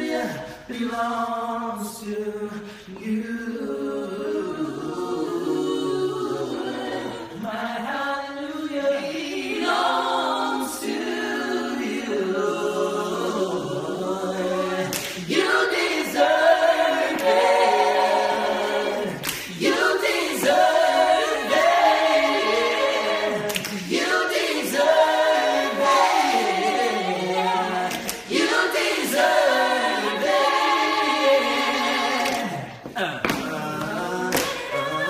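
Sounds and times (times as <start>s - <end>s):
a cappella group singing in harmony: 0.0s - 35.0s.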